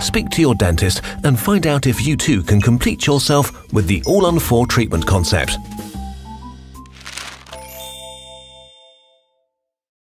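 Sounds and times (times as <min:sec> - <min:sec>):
bright chime ringing: 0:07.5 - 0:09.1.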